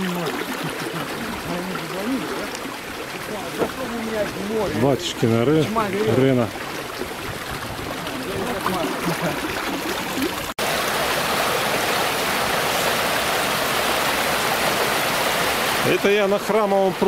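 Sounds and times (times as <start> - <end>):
water rushing through spillway: 0.0 - 17.0.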